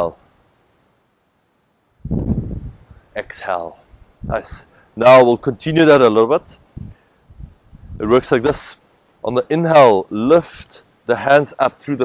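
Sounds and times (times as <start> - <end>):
rush of air on microphone: 2.0 - 5.0, 6.4 - 8.7.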